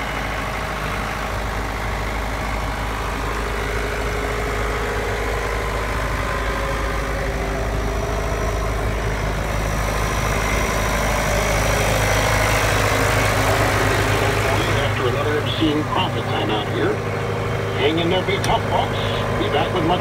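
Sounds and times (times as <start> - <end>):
tractor diesel engine idling: 0.0 - 20.0.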